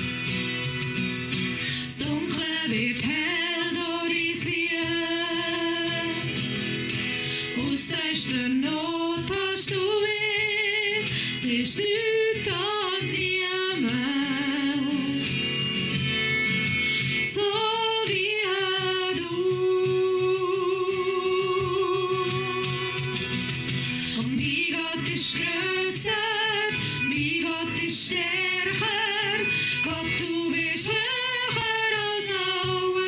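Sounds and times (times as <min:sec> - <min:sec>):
acoustic guitar: 0:00.0 - 0:33.0
cajon drum: 0:00.0 - 0:33.0
violin: 0:00.0 - 0:33.0
women singing: 0:01.8 - 0:06.4, 0:07.4 - 0:15.4, 0:17.2 - 0:23.4, 0:24.1 - 0:33.0.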